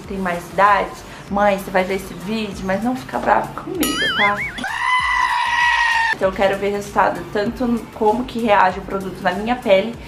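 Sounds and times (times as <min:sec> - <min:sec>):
brief warbling tone: 0:03.8 - 0:04.9
sheep bleating loudly: 0:04.6 - 0:06.2.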